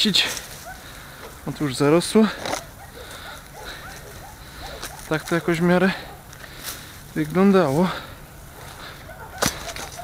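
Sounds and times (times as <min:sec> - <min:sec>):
faint rustling: 0:00.2 - 0:10.0
sharp crack: 0:09.4 - 0:10.0.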